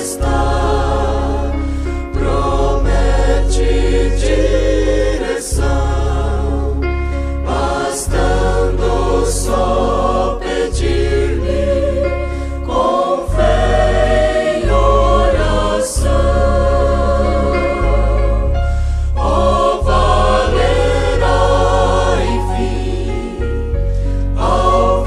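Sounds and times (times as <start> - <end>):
choir singing a hymn: 0.0 - 25.0
instrumental accompaniment: 0.0 - 25.0.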